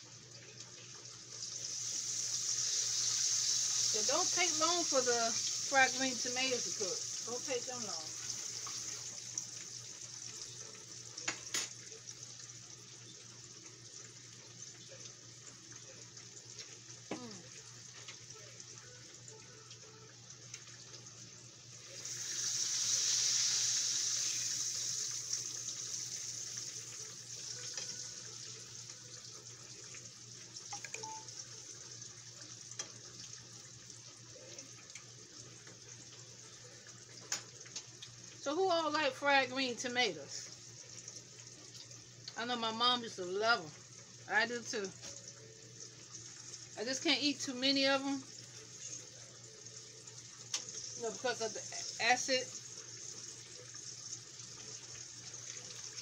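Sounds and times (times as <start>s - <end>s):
hot oil sizzling: 0.0s - 56.0s.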